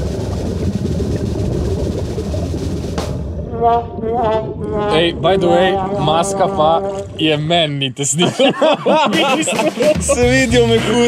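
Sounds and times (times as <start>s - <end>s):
low underwater rumble: 0.0s - 7.6s.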